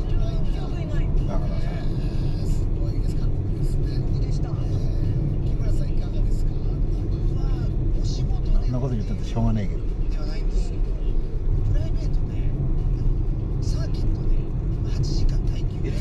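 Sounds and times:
car cabin road rumble: 0.0s - 16.0s.

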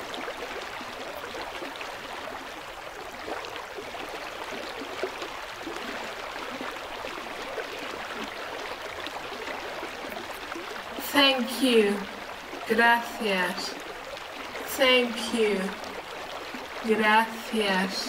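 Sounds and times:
stream flowing: 0.0s - 18.0s
water splashing: 0.0s - 18.0s.

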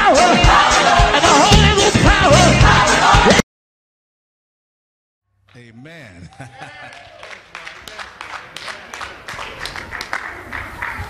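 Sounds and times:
people clapping: 5.5s - 11.0s.

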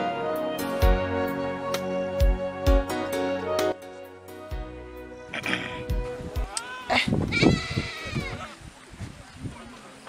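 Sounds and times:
goat bleating: 6.6s - 8.6s.

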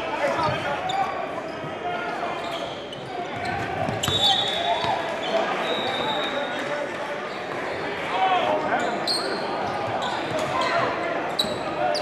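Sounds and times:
crowd chatter: 0.0s - 12.0s
sneakers squeaking on court: 2.4s - 6.3s.

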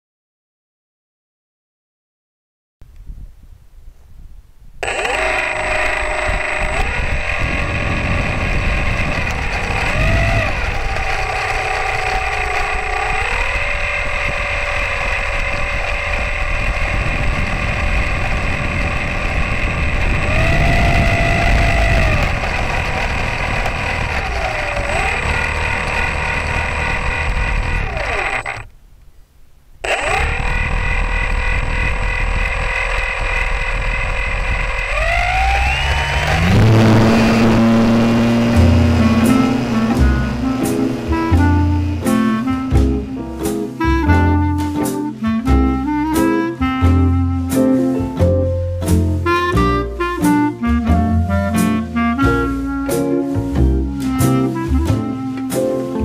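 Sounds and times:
model plane motor whining: 4.8s - 28.7s, 29.8s - 47.8s, 49.3s - 56.0s.

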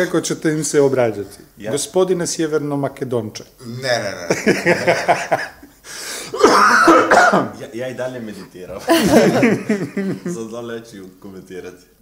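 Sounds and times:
man coughing: 6.3s - 7.6s, 8.9s - 10.1s.

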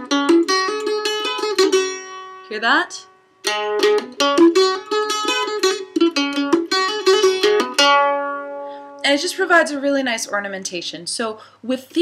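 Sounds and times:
mandolin picked with trills: 0.0s - 10.8s.

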